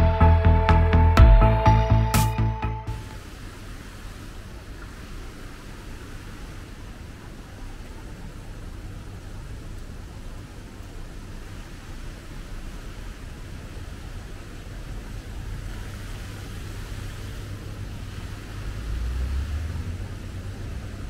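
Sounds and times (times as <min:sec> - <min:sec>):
low city rumble: 0:00.0 - 0:21.0.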